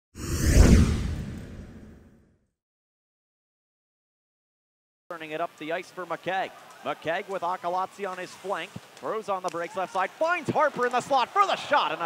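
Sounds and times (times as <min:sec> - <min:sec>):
whoosh: 0:00.2 - 0:02.2.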